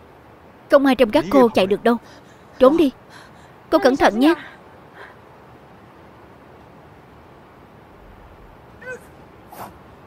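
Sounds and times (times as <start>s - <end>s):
pitched vocal yelp: 8.8s - 9.2s.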